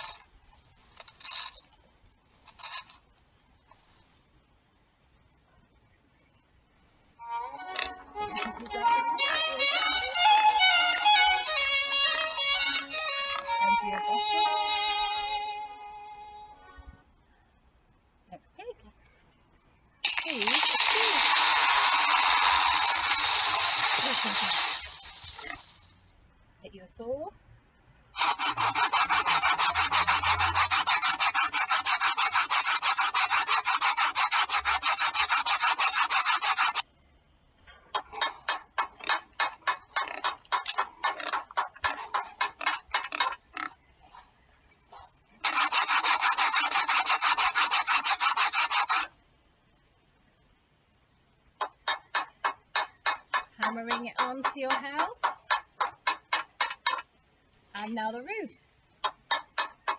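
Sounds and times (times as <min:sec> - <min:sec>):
bright hissing noise: 0:20.0 - 0:26.2
hand saw cutting wood: 0:28.2 - 0:36.8, 0:45.4 - 0:49.1.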